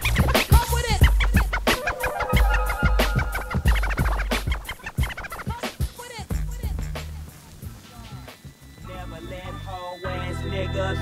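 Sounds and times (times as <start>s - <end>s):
turntable scratching: 0.0s - 8.8s
warbling pitch glides: 1.0s - 5.5s.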